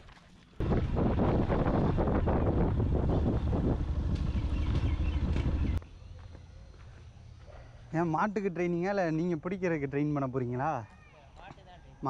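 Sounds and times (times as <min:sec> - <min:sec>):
outdoor background: 0:00.0 - 0:12.0
wind noise on microphone: 0:00.6 - 0:05.8
motorcycle riding: 0:00.6 - 0:06.0.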